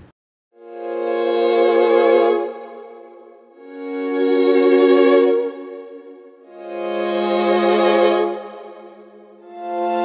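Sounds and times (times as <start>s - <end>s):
muted bowed violin chord: 0.6s - 10.0s.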